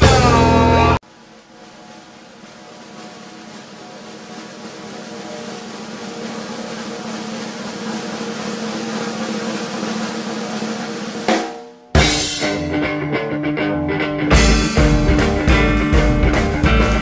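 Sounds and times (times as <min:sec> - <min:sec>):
rock band held notes: 0:00.0 - 0:01.0, 0:05.0 - 0:17.0
snare drum roll: 0:00.0 - 0:12.8.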